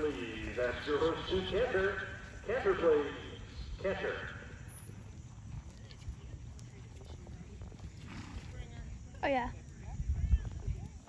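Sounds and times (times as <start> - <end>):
hoofbeats on dirt: 0.0 - 11.0.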